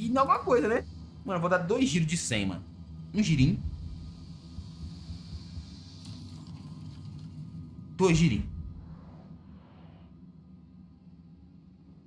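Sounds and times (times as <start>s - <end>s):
low ambient game drone: 0.0s - 12.0s.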